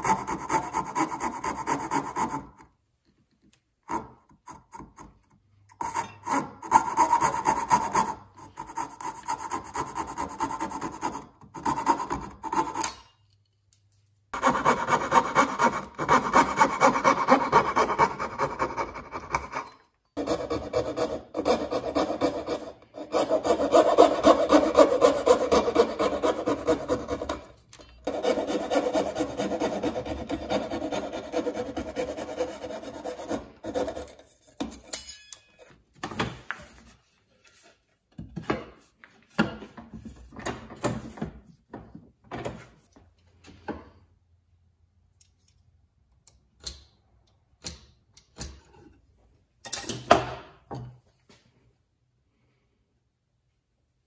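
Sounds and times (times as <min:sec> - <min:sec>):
coping saw cutting wood: 0:14.4 - 0:19.6, 0:20.2 - 0:27.5, 0:28.1 - 0:34.0.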